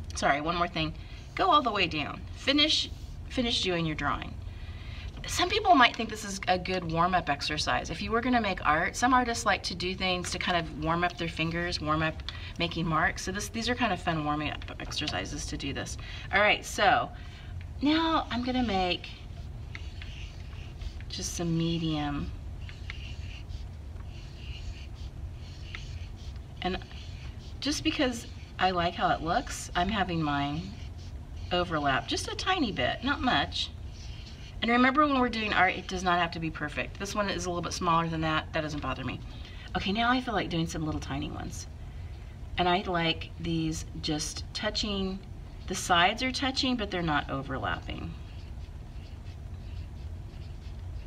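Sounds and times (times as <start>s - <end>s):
low steady hum: 0.0s - 51.0s
marker rubbing on paper: 1.1s - 3.4s, 17.9s - 39.0s, 46.4s - 51.0s.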